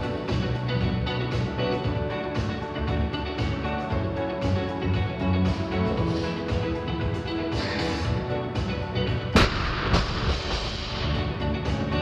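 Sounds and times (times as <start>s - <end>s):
guitar music: 0.0s - 12.0s.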